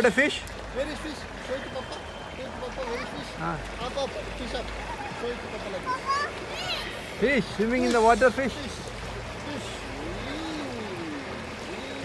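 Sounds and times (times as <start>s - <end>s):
water lapping at pool edge: 0.0s - 12.0s
faint slow gliding tones: 0.2s - 12.0s.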